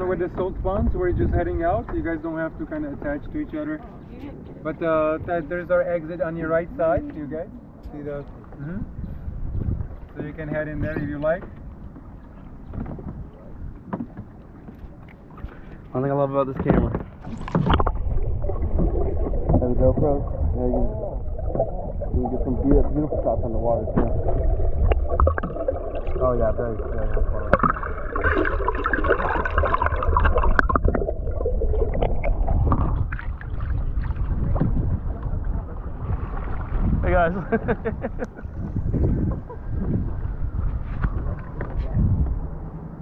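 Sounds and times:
wind rumble on microphone: 0.0 - 43.0
kayak paddles stirring water: 11.1 - 37.3.

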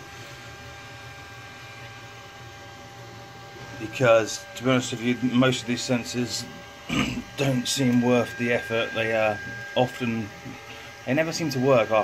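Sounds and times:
printer humming: 0.0 - 12.0
faint whine: 0.1 - 12.0.

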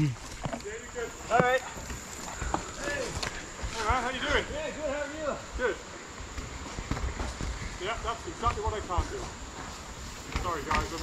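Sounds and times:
footsteps on rocky dirt trail: 0.0 - 11.0.

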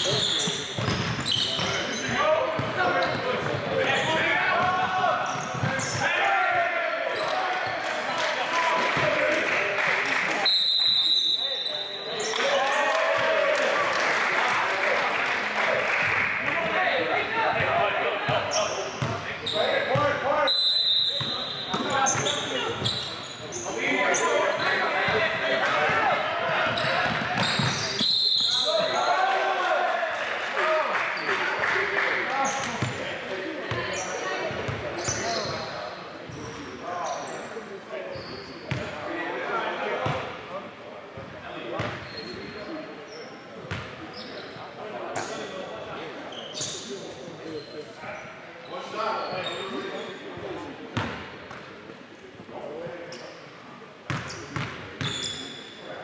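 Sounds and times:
players shouting and chatting: 0.0 - 56.0.

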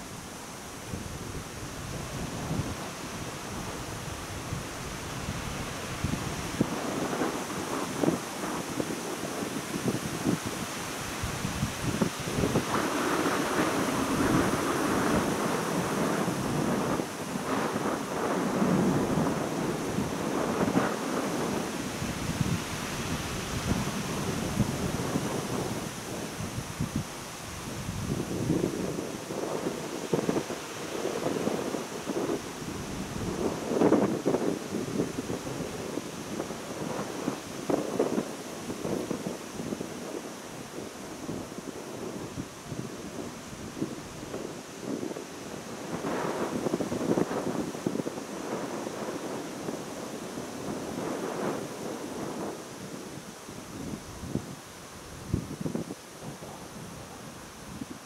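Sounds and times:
wind buffeting microphone: 0.0 - 58.0
wind rustling trees: 0.0 - 58.0.

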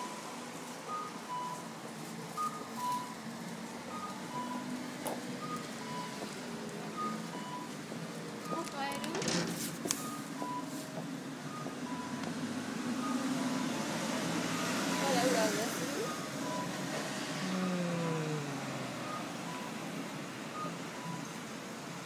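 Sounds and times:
crossing signal beeps: 0.0 - 3.3, 3.9 - 4.8, 5.4 - 7.8, 9.9 - 12.3, 13.0 - 19.9, 20.5 - 21.5
small truck passing: 0.0 - 8.5, 9.2 - 22.0
vehicles driving by: 0.0 - 22.0.

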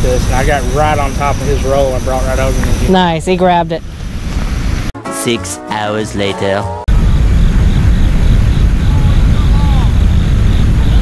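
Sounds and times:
wind buffeting microphone: 0.0 - 4.9, 6.9 - 11.0.

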